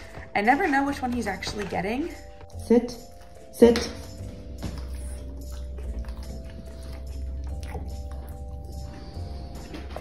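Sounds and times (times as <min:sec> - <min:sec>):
background music: 0:00.0 - 0:10.0
dog chewing a treat: 0:01.4 - 0:10.0.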